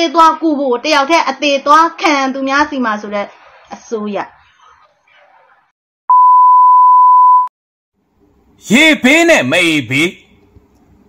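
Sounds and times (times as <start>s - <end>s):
pure-tone test beep: 6.1s - 7.5s.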